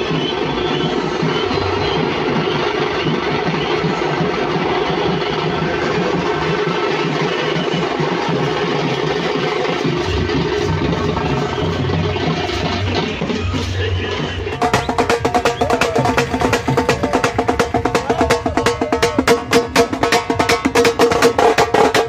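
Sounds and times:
drum band playing: 0.0 - 22.0.

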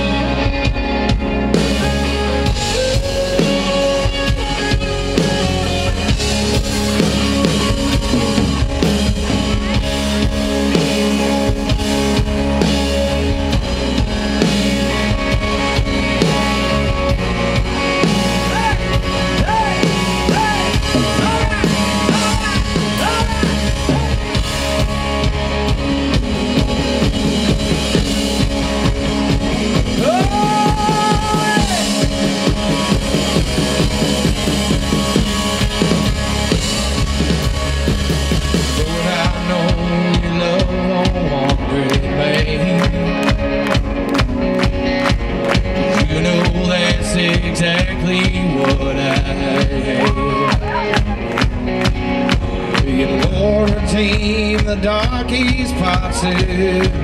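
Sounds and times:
live rock band playing: 0.0 - 57.0
sliding lead guitar notes: 0.0 - 57.0.

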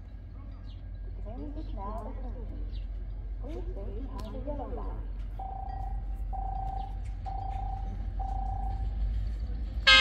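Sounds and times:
diesel locomotive rumble: 0.0 - 10.0
electronic railway warning tone: 5.2 - 9.2, 9.8 - 10.0.

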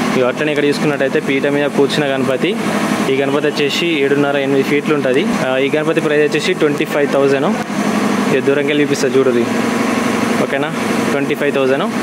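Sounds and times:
man talking: 0.1 - 7.6, 8.3 - 9.6, 10.4 - 12.0.

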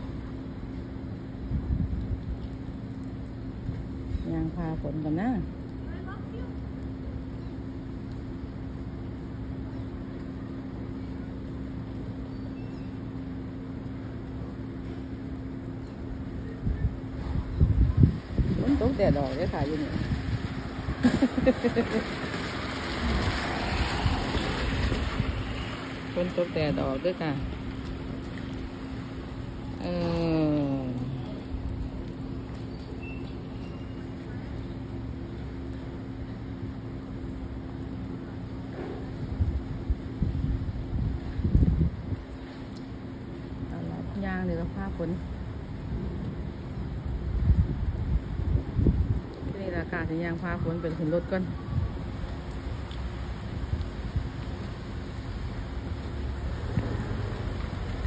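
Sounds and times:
outdoor rumble and hiss: 0.0 - 58.0
wind buffeting microphone: 16.6 - 25.6, 39.2 - 42.4, 45.8 - 50.9.

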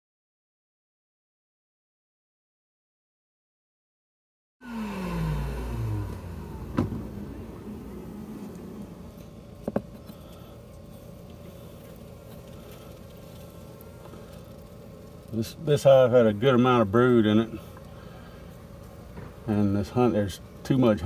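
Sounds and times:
motor vehicle passing by: 4.6 - 9.5.

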